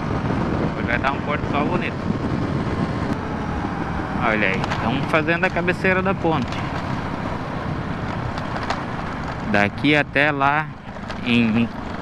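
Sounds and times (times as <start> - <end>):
motorcycle engine drone: 0.0 - 12.0
wind rush: 0.0 - 12.0.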